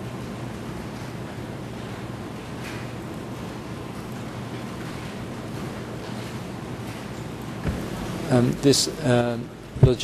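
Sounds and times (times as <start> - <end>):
microphone hiss: 7.2 - 10.0.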